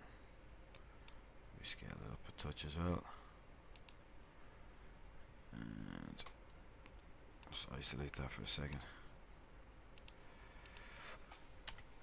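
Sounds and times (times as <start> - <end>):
computer mouse clicks: 3.7 - 4.4, 10.0 - 10.9, 11.6 - 11.9.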